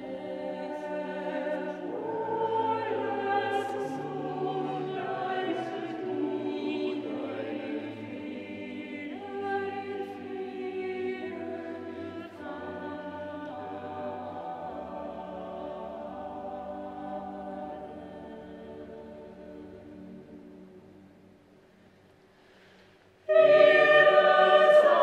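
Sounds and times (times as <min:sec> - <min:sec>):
mixed choir singing in harmony: 0:00.0 - 0:21.4, 0:23.2 - 0:25.0.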